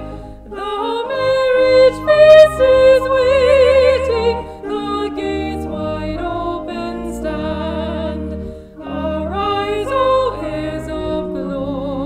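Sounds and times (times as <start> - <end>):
instrumental accompaniment: 0.0 - 12.0
person singing a hymn with vibrato: 0.0 - 12.0.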